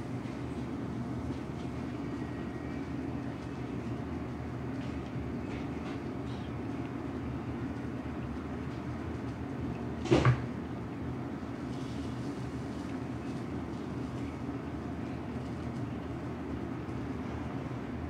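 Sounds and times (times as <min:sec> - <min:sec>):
restaurant background rumble: 0:00.0 - 0:18.0.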